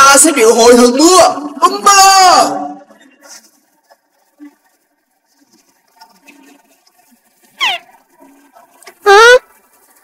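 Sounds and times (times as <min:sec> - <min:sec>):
cartoon voice crying out: 0:09.0 - 0:09.4
cartoon voice questioning: 0:09.0 - 0:09.5.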